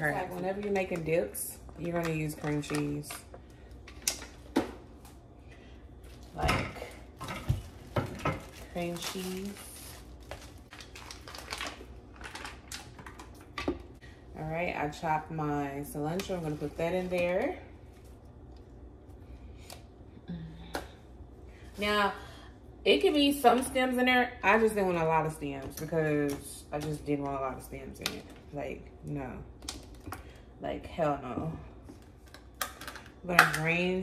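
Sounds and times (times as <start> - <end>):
foil wrapper handling: 7.6 - 13.3
woman humming: 20.2 - 21.0.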